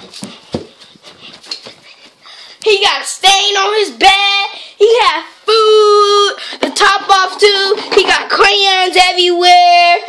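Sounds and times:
footsteps going up stairs: 0.0s - 2.2s.

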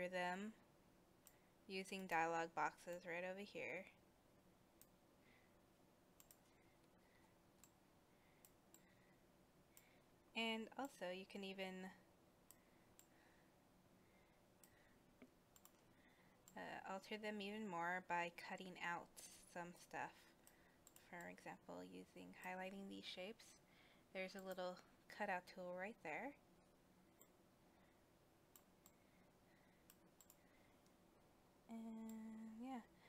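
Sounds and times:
woman speaking: 0.0s - 0.6s, 1.7s - 4.0s, 10.4s - 12.0s, 16.6s - 20.3s, 21.1s - 26.4s, 31.7s - 32.9s
computer mouse clicks: 6.2s - 7.0s, 8.4s - 9.0s, 14.6s - 16.6s, 20.4s - 21.3s, 28.5s - 29.0s, 29.8s - 31.0s.

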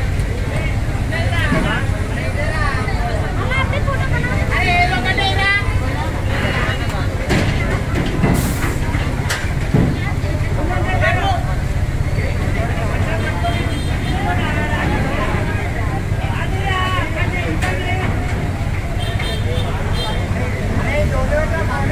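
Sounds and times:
crowd talking: 0.0s - 21.9s
heavy vehicle engine running: 0.0s - 21.9s.

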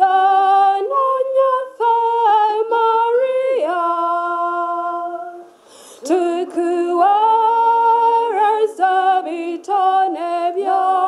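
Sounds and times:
women singing a hymn: 0.0s - 11.0s.

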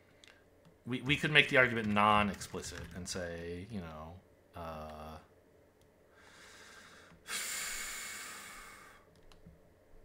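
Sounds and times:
man breathing in and out: 6.0s - 9.1s.

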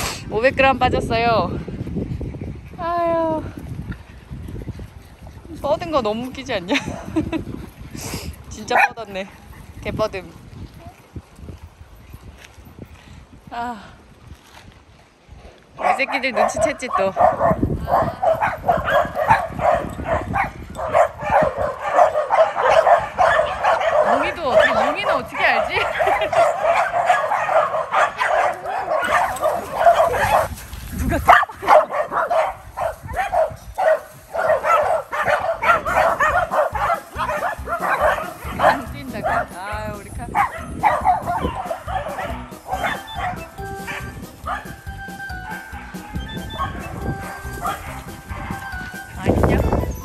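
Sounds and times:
dogs barking and yipping: 8.5s - 10.1s, 15.8s - 50.0s.

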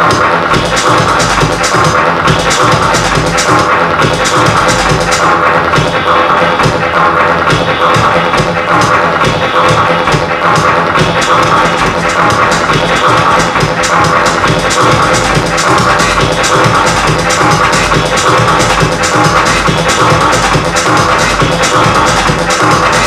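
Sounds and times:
electronic dance music: 0.0s - 23.0s.

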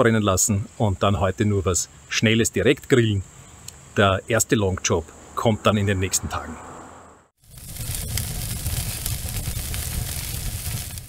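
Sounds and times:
hissing and crackling: 7.4s - 11.0s.

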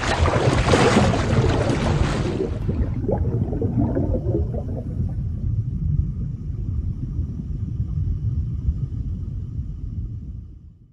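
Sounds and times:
small bubbly pops: 0.0s - 5.2s
deep underwater rumble: 0.0s - 10.9s.

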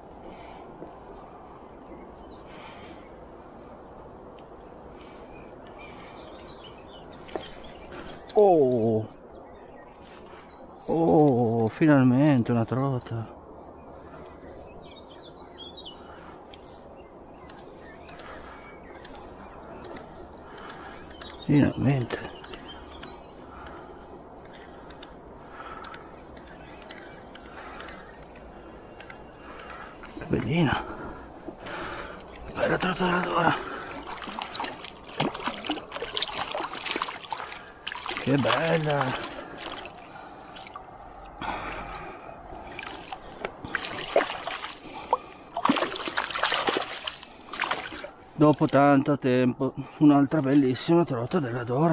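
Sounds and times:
low background rush: 0.0s - 51.9s
small bird chirping: 14.8s - 23.4s
fish splashing in water: 33.9s - 40.8s, 42.6s - 48.2s.

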